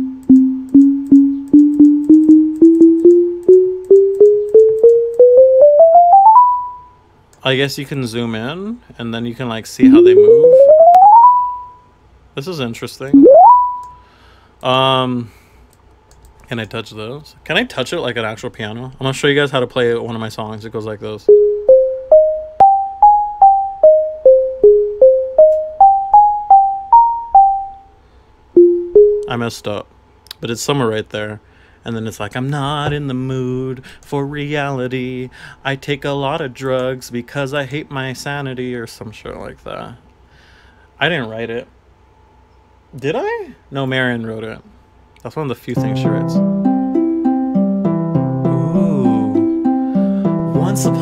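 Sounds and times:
electronic keyboard tones: 0.0 - 7.0, 9.8 - 11.9, 13.2 - 14.0, 21.3 - 27.9, 28.6 - 29.4.

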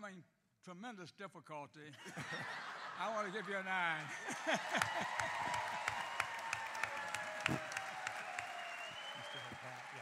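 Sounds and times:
audience applauding: 4.1 - 10.0.

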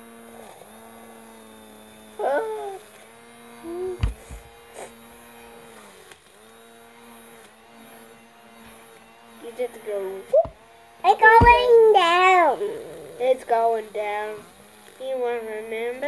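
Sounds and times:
small electric fan humming: 0.0 - 16.0
child's vocal sound: 2.2 - 2.8, 3.6 - 5.0, 11.1 - 14.4.

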